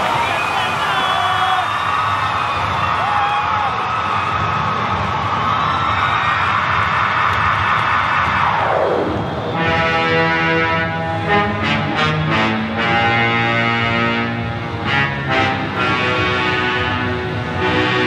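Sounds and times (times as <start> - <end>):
falling pitch sweep: 8.2 - 11.5
held synth chords: 8.4 - 18.0.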